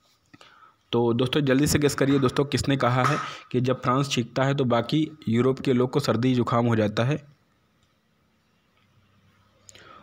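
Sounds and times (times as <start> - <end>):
man's voice: 0.9 - 7.3.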